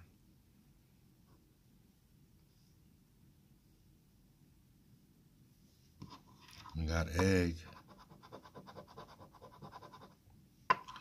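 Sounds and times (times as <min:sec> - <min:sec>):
coin scratching lottery ticket: 0:07.7 - 0:10.1.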